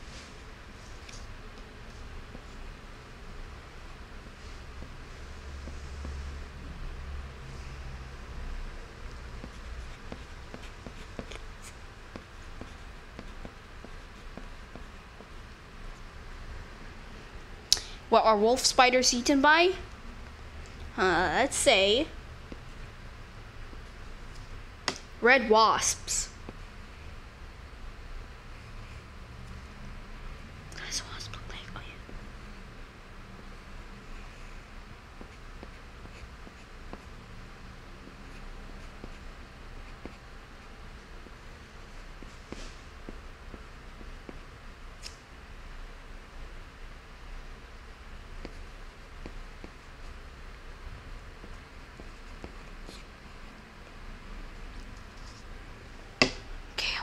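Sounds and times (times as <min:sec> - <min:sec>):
faint low hum: 0:00.0 - 0:57.0
room hiss: 0:00.0 - 0:57.0
boy whispering: 0:30.7 - 0:32.1, 0:56.8 - 0:57.0.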